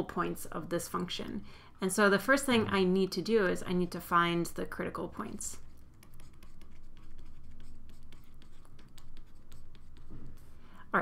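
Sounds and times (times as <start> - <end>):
stylus tapping and scratching: 5.0 - 10.5.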